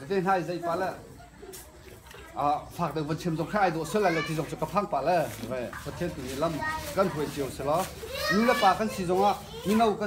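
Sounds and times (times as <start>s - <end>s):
children's voices: 3.0s - 5.0s, 6.1s - 10.0s.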